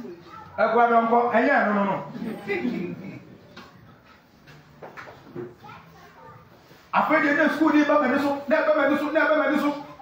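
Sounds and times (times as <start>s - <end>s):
faint indistinct voices: 0.0s - 10.0s
man speaking loudly: 0.6s - 3.2s, 6.9s - 10.0s.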